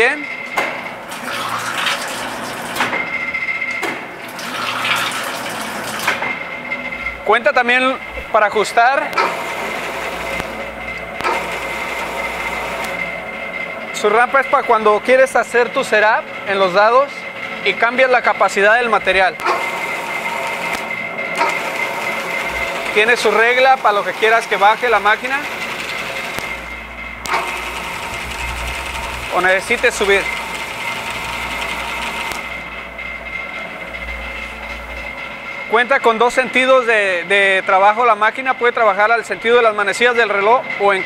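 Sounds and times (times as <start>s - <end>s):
machine hum and whine: 0.0s - 41.0s
sharp click: 9.1s - 9.4s, 11.2s - 11.4s, 19.4s - 19.7s, 26.3s - 26.6s, 27.2s - 27.6s, 32.3s - 32.5s.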